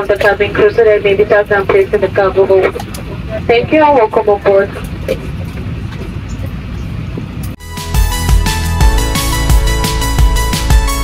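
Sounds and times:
airliner cabin rumble: 0.0s - 7.6s.

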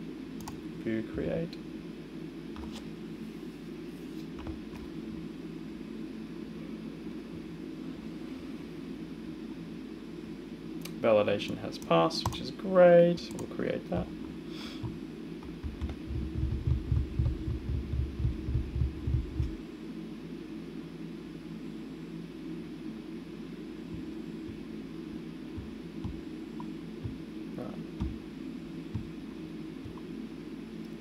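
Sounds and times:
steady low hum: 0.0s - 31.0s
low throbbing rumble: 15.6s - 19.6s.

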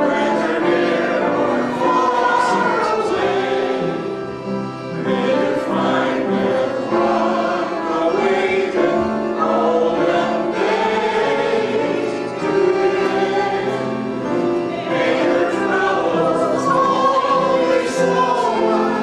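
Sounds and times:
choir singing in harmony: 0.0s - 19.0s.

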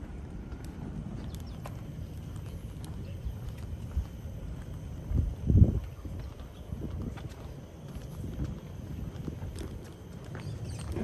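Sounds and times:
footsteps on decking boards: 0.0s - 11.0s
wind rumble on microphone: 0.0s - 11.0s.

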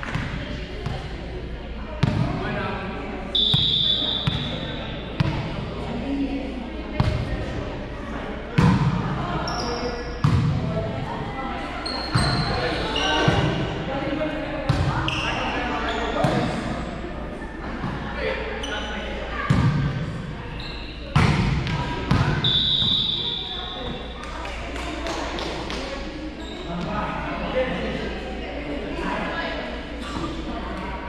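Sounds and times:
players' voices: 0.0s - 31.0s
volleyball hitting slaps: 21.2s - 22.4s.

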